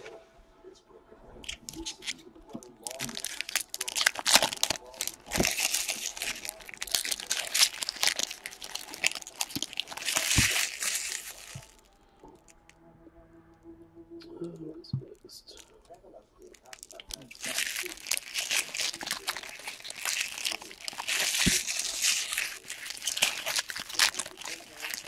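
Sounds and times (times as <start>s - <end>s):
foil wrappers crinkling and tearing: 1.4s - 12.6s, 16.4s - 25.0s.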